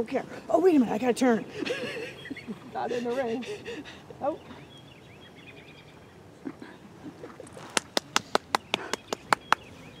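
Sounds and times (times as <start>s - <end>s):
person clapping: 7.7s - 9.7s.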